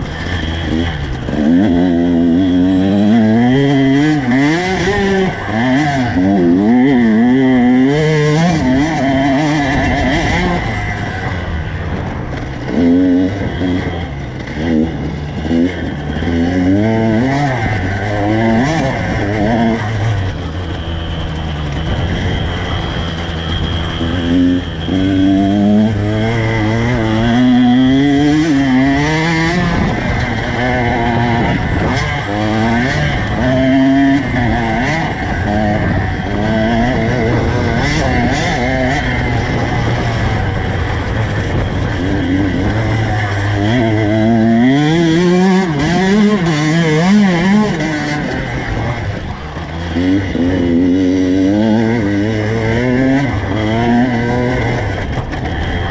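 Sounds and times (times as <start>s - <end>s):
dirt bike engine revving: 0.0s - 55.9s.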